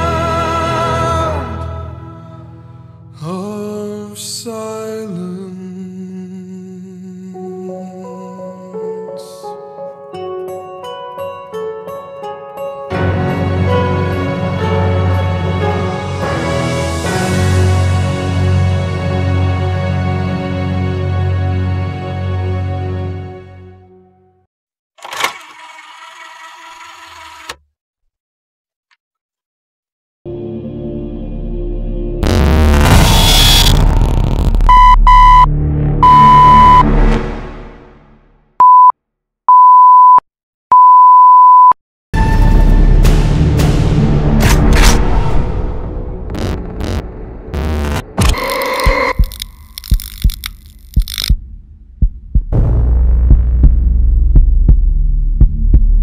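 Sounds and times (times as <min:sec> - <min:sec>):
loud low drone: 0:30.3 - 0:38.2, 0:42.2 - 0:50.4, 0:51.1 - 0:56.0
low hum: 0:44.1 - 0:56.0
heartbeat-like low thumps: 0:46.3 - 0:56.0.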